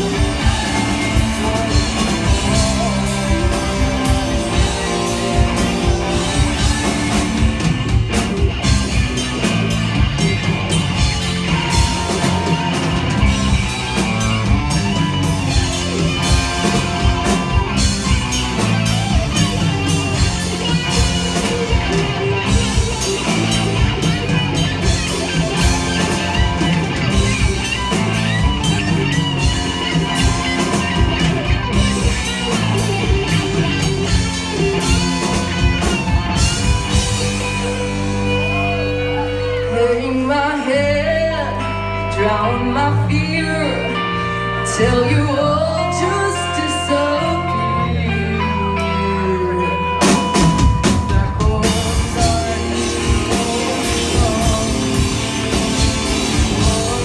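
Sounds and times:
rock band playing: 0.0s - 57.0s.

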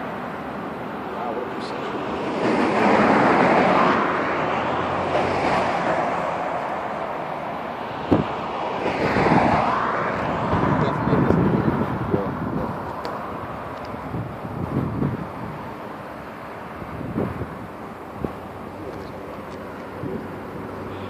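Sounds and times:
vehicles passing on highway: 0.0s - 21.0s
wind buffeting microphone: 7.9s - 20.7s.

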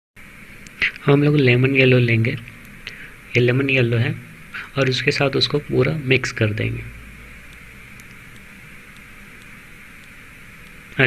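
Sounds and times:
background hiss: 0.2s - 11.0s
low hum: 0.2s - 11.0s.

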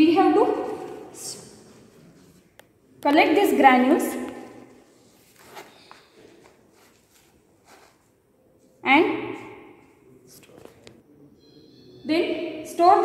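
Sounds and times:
paper rustling: 4.9s - 8.2s.

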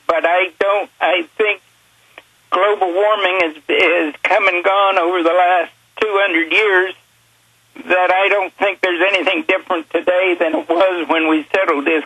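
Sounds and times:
person talking over telephone: 0.0s - 1.6s, 2.5s - 7.0s, 7.8s - 12.0s.

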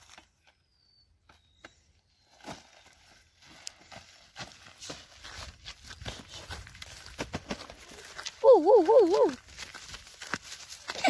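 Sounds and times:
footsteps on dry stubble: 2.5s - 11.0s.

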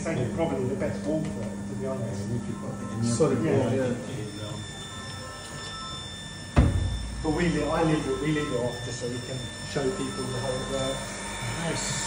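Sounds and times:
pump humming: 0.0s - 12.0s.

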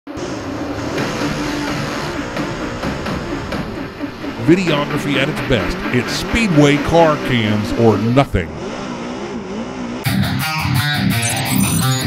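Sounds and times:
race car engines revving: 0.1s - 12.0s.

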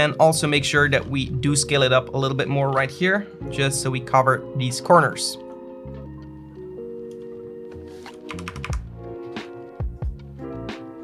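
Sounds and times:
background music with held notes: 0.0s - 11.0s
keyboard clicks: 8.0s - 8.9s.

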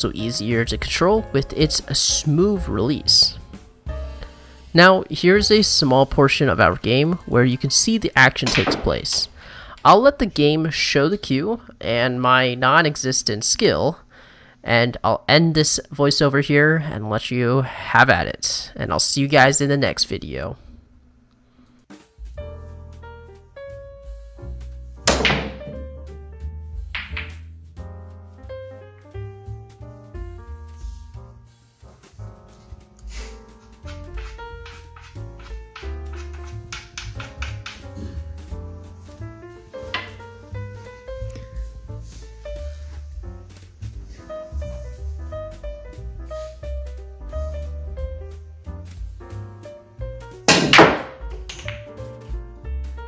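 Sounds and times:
piano background music: 0.0s - 20.6s, 21.8s - 53.0s
pool balls clicking: 5.2s - 10.1s, 25.1s - 26.1s, 26.8s - 27.6s, 32.9s - 41.6s, 49.3s - 53.0s
cue striking pool balls: 8.4s - 9.3s, 25.0s - 26.1s, 26.8s - 27.5s, 33.7s - 38.7s, 39.8s - 40.4s, 50.5s - 52.2s.

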